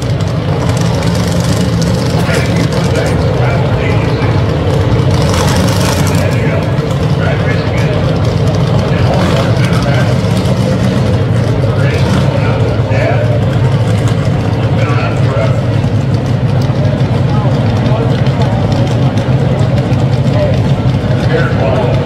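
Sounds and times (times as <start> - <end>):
dragster engines idling: 0.0 - 22.0.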